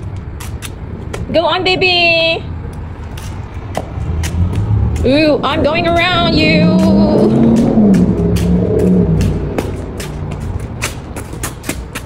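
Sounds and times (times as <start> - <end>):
footsteps on concrete: 0.0 - 2.0, 2.6 - 12.0
low steady rumble: 0.0 - 11.4.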